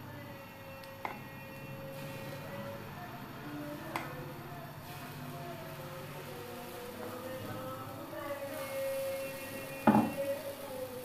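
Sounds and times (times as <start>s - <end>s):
steady humming tone: 0.0s - 11.0s.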